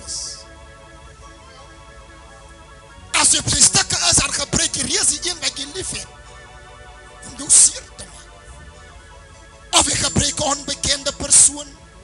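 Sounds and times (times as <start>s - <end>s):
background music chords: 0.0s - 12.0s
preacher speaking loudly: 3.1s - 6.1s, 7.2s - 8.3s, 9.7s - 11.8s.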